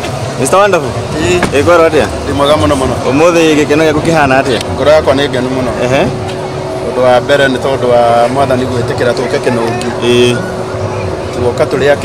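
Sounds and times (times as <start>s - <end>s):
man talking: 0.4s - 6.2s, 6.8s - 10.5s, 11.3s - 12.0s.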